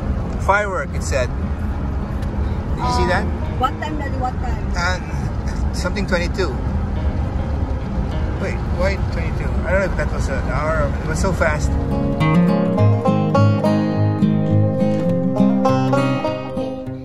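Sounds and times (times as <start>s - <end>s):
car road and engine rumble: 0.0s - 17.0s
voices: 2.7s - 6.6s.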